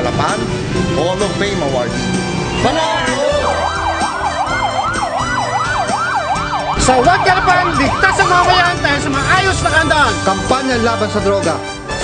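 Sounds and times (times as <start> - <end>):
backing music: 0.0 - 12.0
siren yelping: 2.4 - 9.8.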